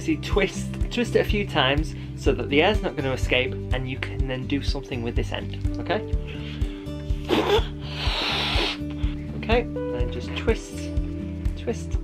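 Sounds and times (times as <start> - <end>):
background music with steady beat: 0.0 - 12.0
person breathing in: 6.2 - 9.3
blowing into balloon: 7.1 - 9.1.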